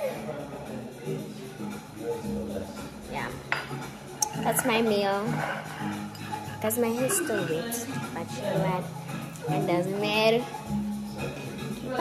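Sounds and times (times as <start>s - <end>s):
dishes clinking: 3.4s - 6.2s.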